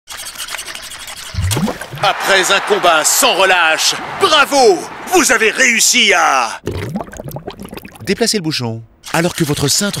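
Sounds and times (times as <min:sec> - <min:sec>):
shallow water splashing: 0:00.6 - 0:02.0.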